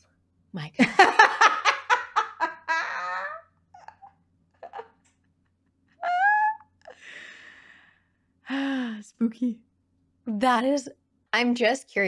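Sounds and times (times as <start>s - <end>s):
women laughing and squealing: 2.3s - 4.9s, 6.0s - 6.7s
breathy sound: 6.8s - 9.2s.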